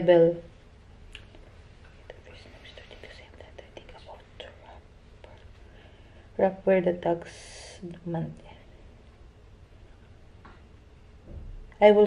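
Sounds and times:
person whispering: 0:01.9 - 0:05.5.

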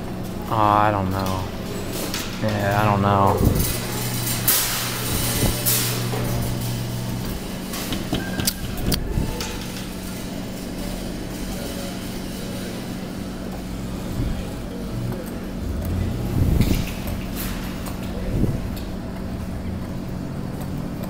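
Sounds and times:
claw machine motor hum: 0:00.0 - 0:21.0
constant low hum: 0:00.0 - 0:21.0.

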